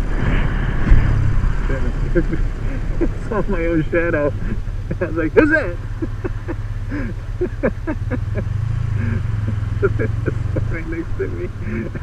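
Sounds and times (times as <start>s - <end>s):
motorcycle engine running: 1.8s - 12.0s
man chuckling: 2.0s - 3.2s, 4.4s - 12.0s.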